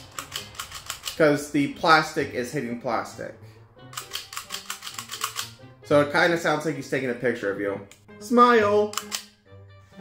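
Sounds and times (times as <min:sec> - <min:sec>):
puppet eye mechanism clicking: 0:00.0 - 0:01.2, 0:03.9 - 0:05.6, 0:08.9 - 0:09.4.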